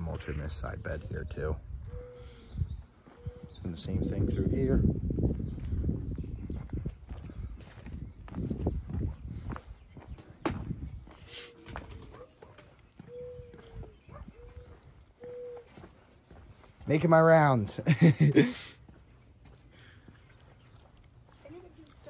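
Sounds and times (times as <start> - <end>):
footsteps on concrete: 5.0 - 22.0.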